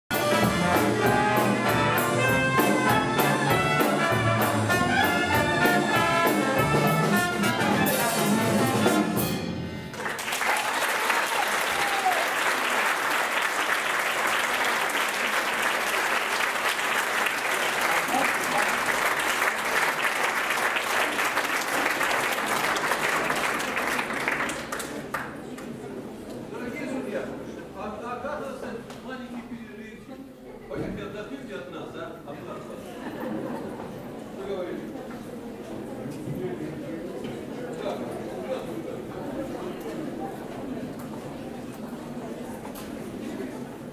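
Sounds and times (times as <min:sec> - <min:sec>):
jazz band playing: 0:00.1 - 0:10.1
audience applause: 0:09.9 - 0:25.8.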